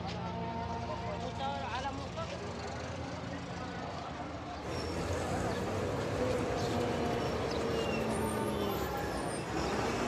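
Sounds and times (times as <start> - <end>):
traffic running steadily: 0.0 - 10.0.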